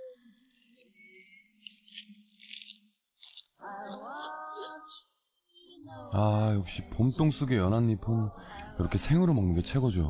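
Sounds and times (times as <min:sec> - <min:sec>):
cabbage leaves crackling being torn: 0:00.7 - 0:04.0.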